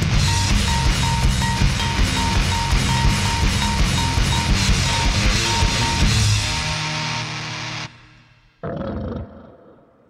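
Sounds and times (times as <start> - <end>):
goregrind band playing: 0.0 - 8.0.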